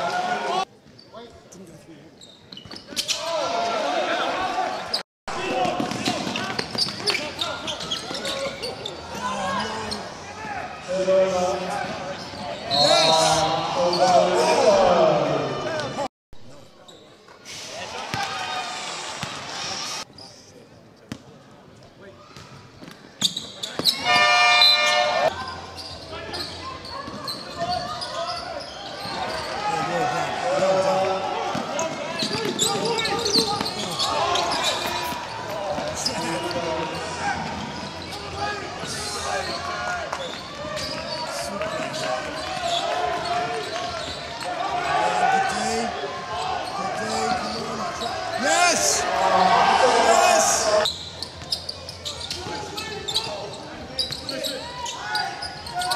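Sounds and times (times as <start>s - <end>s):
crowd voices: 21.4s - 55.9s
game buzzer: 24.1s - 25.3s.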